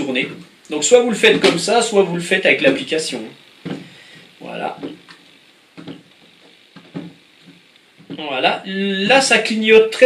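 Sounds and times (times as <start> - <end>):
plastic drone knocks and rubs: 3.6 - 3.9, 5.8 - 6.1, 6.8 - 8.3.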